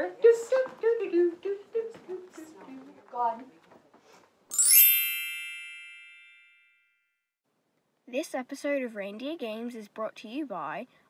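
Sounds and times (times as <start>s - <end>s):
bell-like chime sweeping upward: 4.5s - 6.8s.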